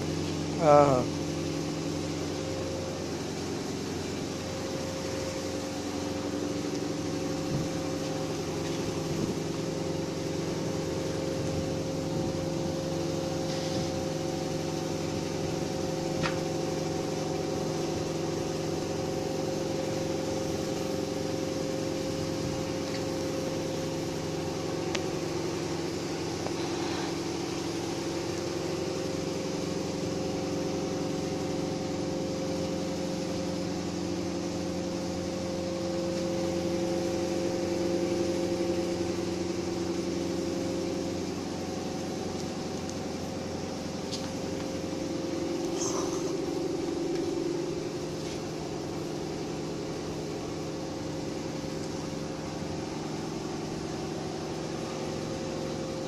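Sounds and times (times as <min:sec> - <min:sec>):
weaving loom machinery humming: 0:00.0 - 0:56.0.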